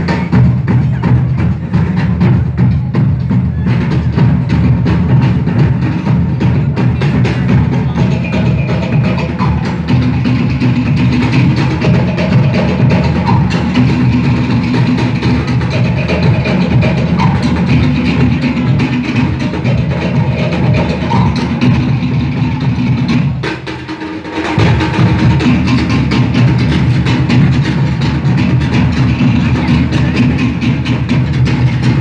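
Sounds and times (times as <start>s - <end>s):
bass drum beat: 0.0s - 23.8s, 24.4s - 32.0s.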